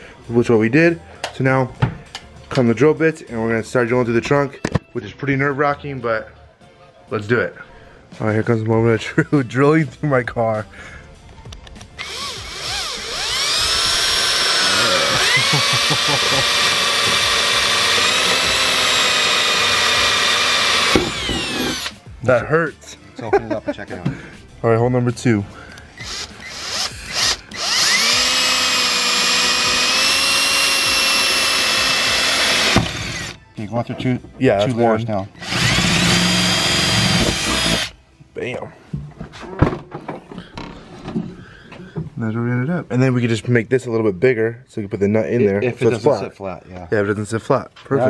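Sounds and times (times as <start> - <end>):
cordless drill whining: 12.0 - 22.0, 26.0 - 33.4, 35.4 - 38.0.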